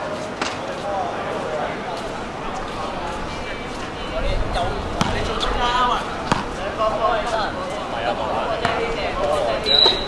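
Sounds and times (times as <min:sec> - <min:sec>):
players calling out: 0:00.8 - 0:10.0
basketball bouncing: 0:05.0 - 0:05.4, 0:06.2 - 0:06.5.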